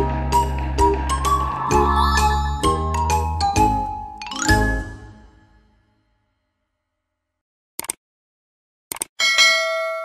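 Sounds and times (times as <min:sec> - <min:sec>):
rising sweep: 0:00.8 - 0:03.4
jingle with chiming notes: 0:00.9 - 0:05.7.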